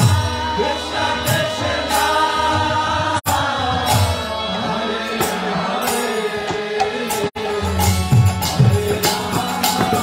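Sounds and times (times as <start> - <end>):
harmonium chords: 0.0 - 10.0
voices chanting together: 0.0 - 10.0.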